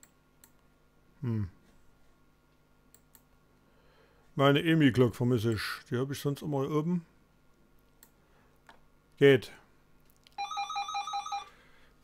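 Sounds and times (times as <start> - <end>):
telephone ringer trilling: 10.4 - 11.6.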